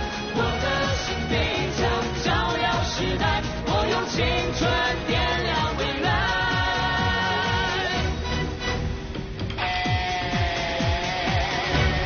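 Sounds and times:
person singing with vibrato: 0.0 - 8.2.

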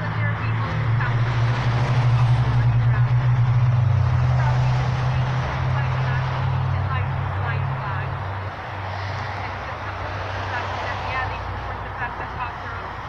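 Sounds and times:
faint voices: 0.0 - 13.0
vehicle engine hum: 0.0 - 13.0.

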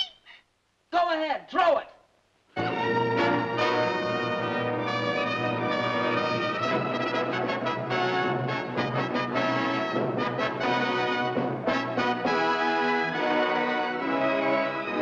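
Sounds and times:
brass-led orchestral music: 2.6 - 15.0.

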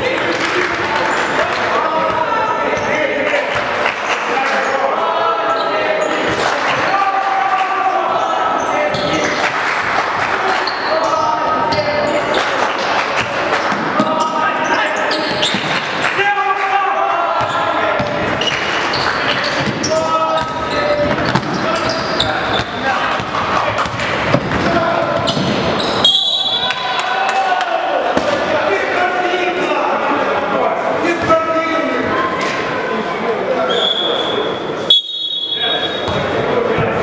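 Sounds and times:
basketball bouncing on court: 19.5 - 25.7, 36.0 - 37.0.

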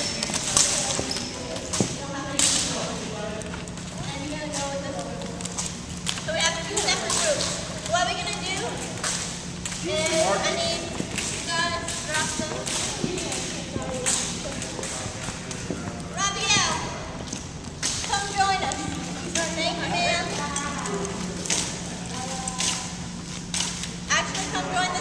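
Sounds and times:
jump ropes slapping wooden floor: 0.0 - 24.5
indistinct voices: 0.0 - 25.0
steady low hum: 0.0 - 25.0.

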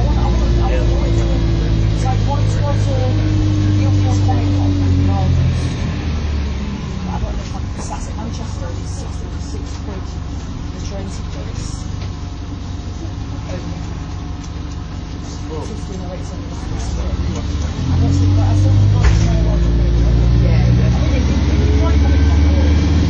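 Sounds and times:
bus diesel engine drone: 0.0 - 23.0
road rumble: 0.0 - 23.0.

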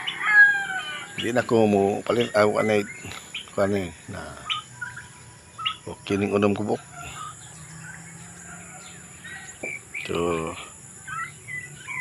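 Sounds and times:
young turkeys peeping: 0.0 - 12.0.

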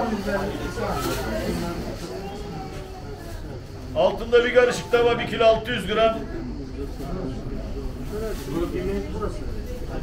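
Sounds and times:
men talking indistinctly: 3.8 - 10.0.

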